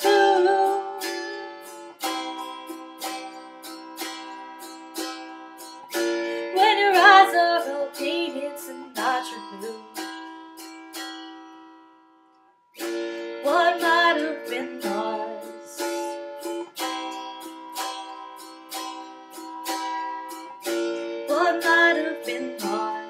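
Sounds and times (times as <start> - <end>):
woman singing wavering note: 0.0 - 1.6, 6.5 - 10.0, 13.4 - 16.2, 21.3 - 23.0
autoharp strummed chords: 0.0 - 12.1, 12.8 - 23.0.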